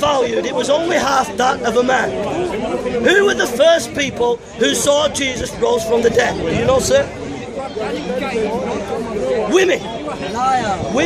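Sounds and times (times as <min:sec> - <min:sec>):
people talking over each other: 0:00.0 - 0:11.0.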